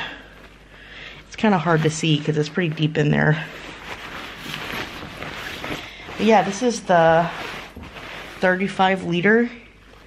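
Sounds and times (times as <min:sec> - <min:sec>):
nylon fabric rustling: 0:00.0 - 0:10.0.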